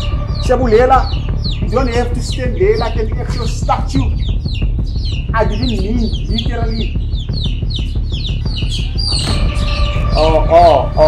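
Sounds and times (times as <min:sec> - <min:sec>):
small bird chirping: 0:00.0 - 0:11.0.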